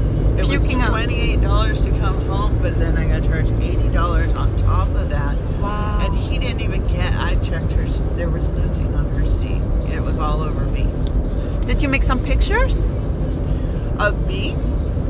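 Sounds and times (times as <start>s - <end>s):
car road and engine rumble: 0.0s - 15.0s
person speaking: 0.3s - 10.9s.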